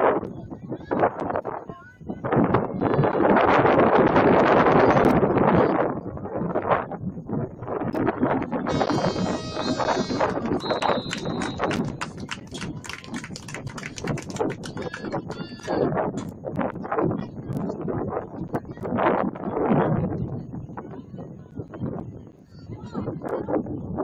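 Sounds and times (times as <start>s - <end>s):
crowd noise: 8.0s - 16.4s
high whistle blast: 8.7s - 12.0s
horn-like tone: 8.7s - 12.0s
sharp claps and knocks: 8.8s - 16.4s.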